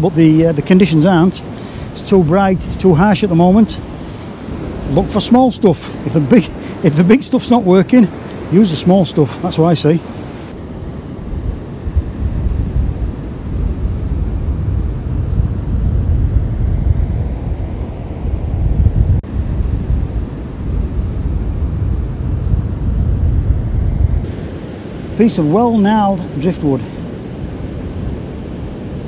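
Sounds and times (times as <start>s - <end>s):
wind buffeting microphone: 0.0s - 29.0s.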